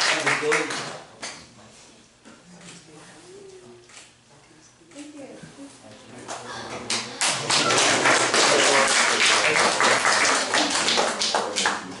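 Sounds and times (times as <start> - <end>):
people applauding: 0.0 - 1.0, 6.9 - 12.0.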